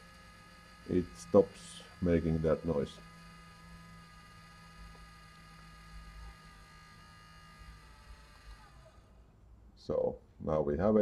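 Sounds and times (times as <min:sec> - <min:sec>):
printer humming with high whine: 0:00.0 - 0:09.0.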